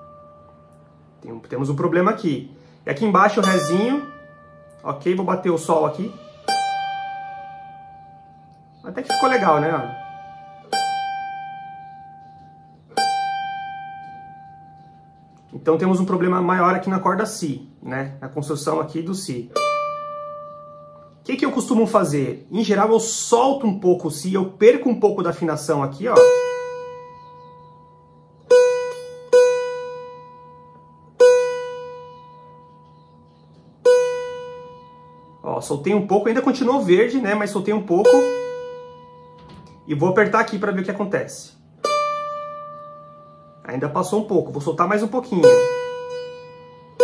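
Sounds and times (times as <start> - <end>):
plucked cavaquinho notes ringing: 0.0 - 47.0.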